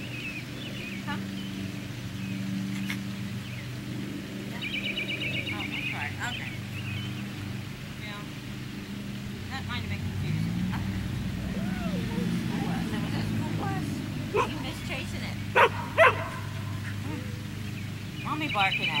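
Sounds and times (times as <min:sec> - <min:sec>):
dog barking: 0:14.3 - 0:14.7, 0:15.5 - 0:17.0.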